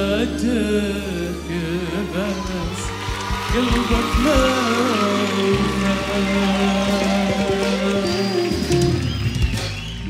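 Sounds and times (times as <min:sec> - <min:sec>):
bass line: 0:00.0 - 0:10.0
keyboard chords: 0:00.0 - 0:10.0.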